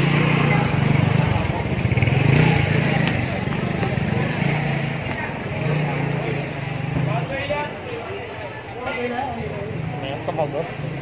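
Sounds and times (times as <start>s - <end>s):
motorcycle engine running: 0.0s - 7.8s
voices of a busy street: 0.0s - 11.0s.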